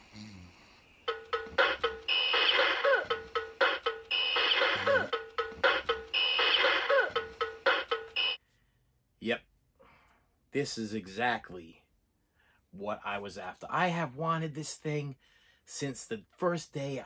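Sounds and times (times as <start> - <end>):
alarm clock ringing: 1.0 - 8.4
toy drum strokes: 1.1 - 8.3.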